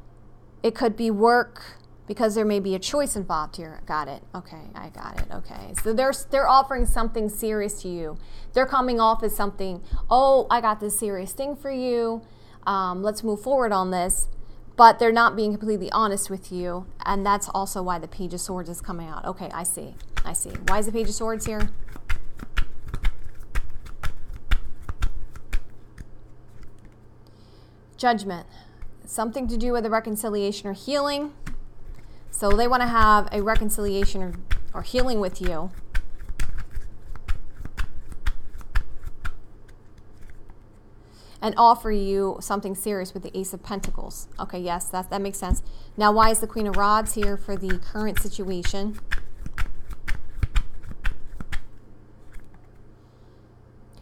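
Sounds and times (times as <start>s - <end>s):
cards being shuffled: 19.8s - 27.1s, 31.4s - 40.9s, 45.5s - 52.9s.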